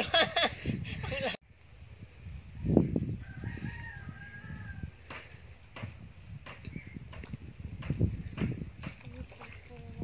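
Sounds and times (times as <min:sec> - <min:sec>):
rooster crowing: 0:03.2 - 0:05.0.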